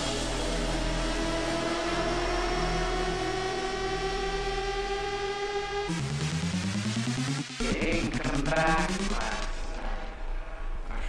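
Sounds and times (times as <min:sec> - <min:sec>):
deep sub-bass: 0:00.0 - 0:11.0
synth tone rising in pitch: 0:01.7 - 0:09.9
fast low pulsing: 0:03.6 - 0:10.0.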